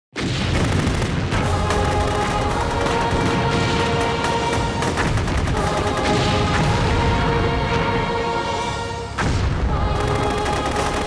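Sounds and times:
dramatic music: 1.1 - 11.0.

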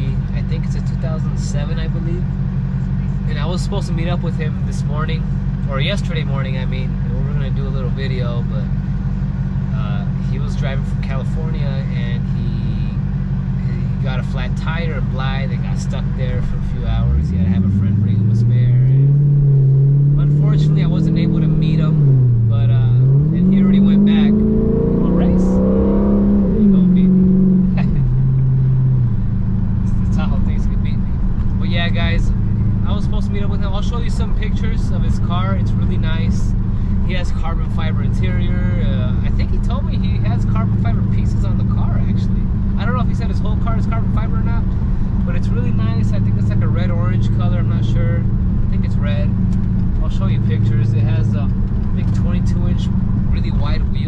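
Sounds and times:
man talking: 0.0 - 2.4, 3.0 - 8.9, 9.7 - 19.1, 20.2 - 25.9, 26.6 - 28.1, 29.8 - 49.4, 50.0 - 54.0
car engine running: 0.0 - 54.0.

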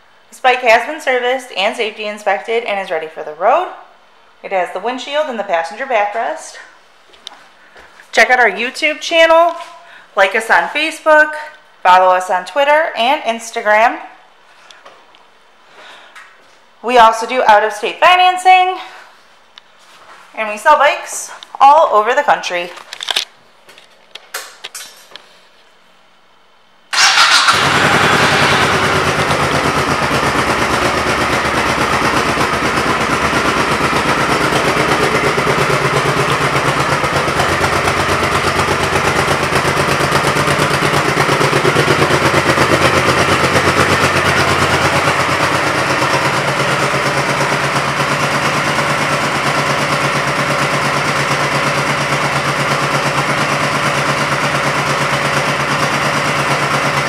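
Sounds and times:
motorcycle engine idling: 27.0 - 57.0.

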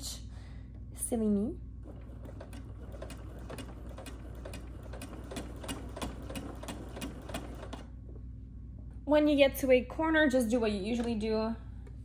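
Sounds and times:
sewing machine stitching: 1.8 - 7.9.

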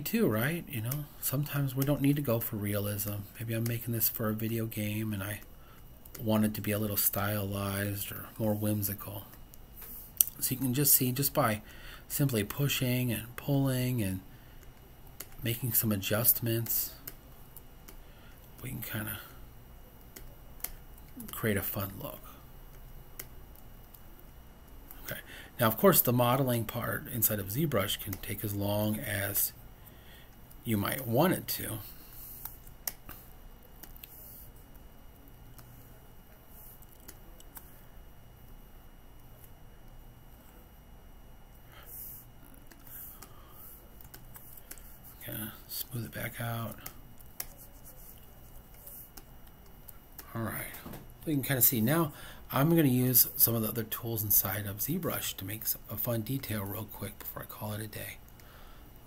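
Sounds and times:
low steady hum: 0.0 - 59.0
thin whine: 0.0 - 59.0.

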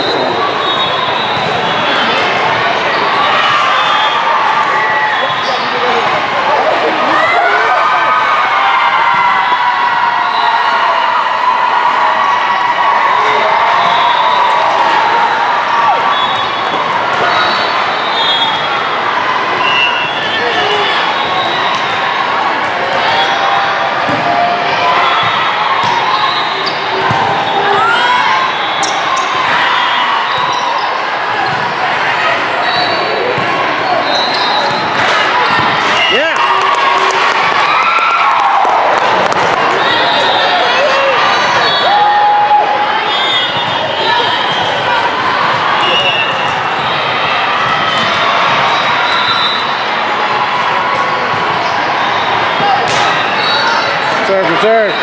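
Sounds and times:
sneaker squeaks: 0.0 - 4.2, 5.0 - 6.1, 25.1 - 31.8, 32.6 - 36.2, 43.1 - 49.8, 52.6 - 55.0
babble of many voices: 0.0 - 55.0
volleyballs hit and bouncing: 26.7 - 27.8, 34.4 - 36.2, 43.5 - 48.9, 52.4 - 53.4.

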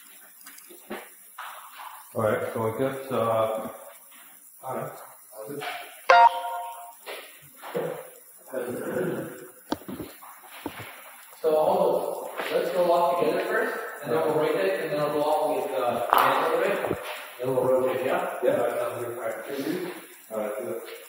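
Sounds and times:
people talking: 2.2 - 3.8, 4.6 - 6.5, 8.5 - 9.4, 11.4 - 20.9.

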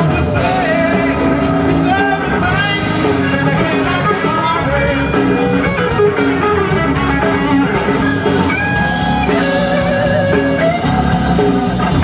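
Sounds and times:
bass guitar: 0.0 - 12.0
drum kit steady beat: 0.0 - 12.0
electric guitar: 0.0 - 12.0.

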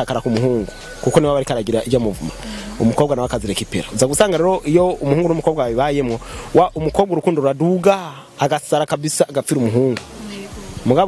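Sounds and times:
man talking: 0.0 - 10.1
faint steady buzz: 0.0 - 11.0.

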